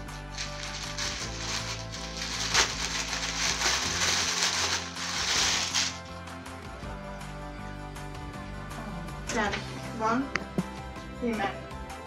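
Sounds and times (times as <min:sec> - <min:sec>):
plastic packaging rustling: 0:00.0 - 0:06.1
background music: 0:00.0 - 0:12.0.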